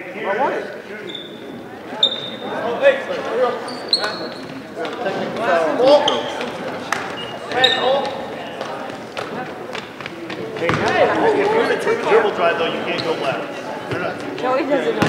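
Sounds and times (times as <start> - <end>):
voices of players and spectators: 0.0 - 15.0
shoe squeaks: 1.0 - 4.8, 5.8 - 8.3
basketball bouncing on hardwood: 10.6 - 10.9.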